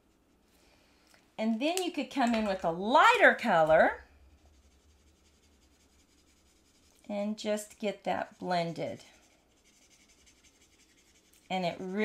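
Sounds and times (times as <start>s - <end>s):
low steady hum: 0.0s - 12.0s
marker tip rubbing on card: 4.5s - 6.9s, 8.3s - 11.9s.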